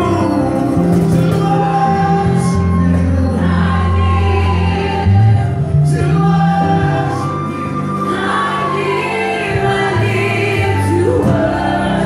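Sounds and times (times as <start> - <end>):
band playing: 0.0 - 12.0
voices singing gospel: 0.0 - 12.0.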